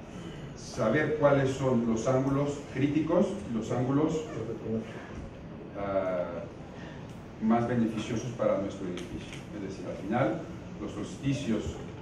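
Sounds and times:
man talking: 0:00.6 - 0:05.0, 0:05.7 - 0:06.6, 0:07.4 - 0:11.9.

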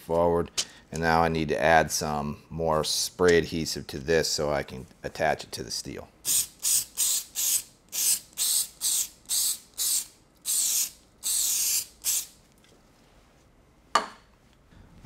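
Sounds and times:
aerosol can spraying: 0:06.3 - 0:12.4.

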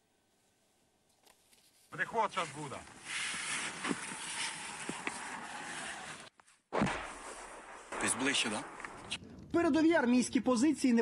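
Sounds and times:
camera handling rustle: 0:01.1 - 0:01.9
loud thump: 0:06.7 - 0:09.4.

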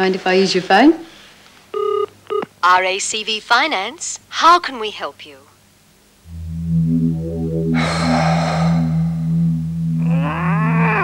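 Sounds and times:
low humming note: 0:06.2 - 0:11.0
rising groan-like glide: 0:06.2 - 0:11.0.

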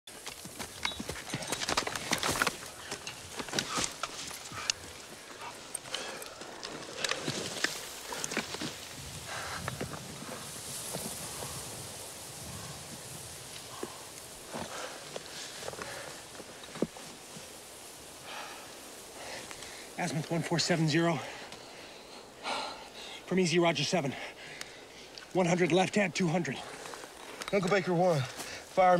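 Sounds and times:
rifles and gear rattling: 0:00.1 - 0:10.0
grass rustling: 0:00.1 - 0:28.9.

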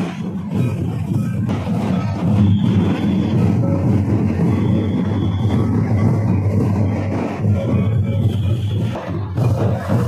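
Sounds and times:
folk drumming: 0:00.0 - 0:10.0.

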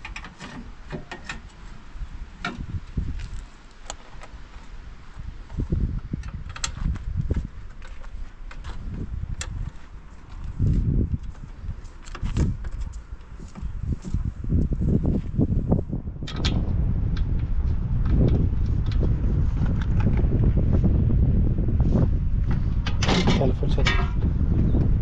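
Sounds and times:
bolts and metal panel clicking: 0:00.0 - 0:01.6
wind rumbling on microphone: 0:00.0 - 0:25.0.

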